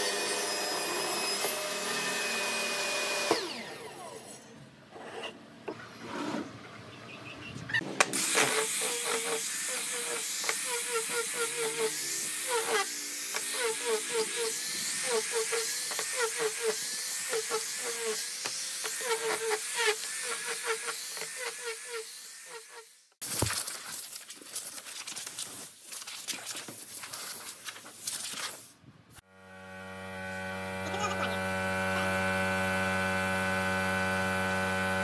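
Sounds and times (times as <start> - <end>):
angle grinder sanding wood: 8.2 - 22.9, 29.9 - 35.0.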